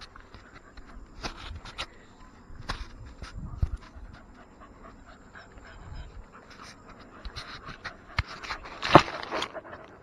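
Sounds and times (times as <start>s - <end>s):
dogs panting: 0.0s - 1.2s, 3.1s - 10.0s.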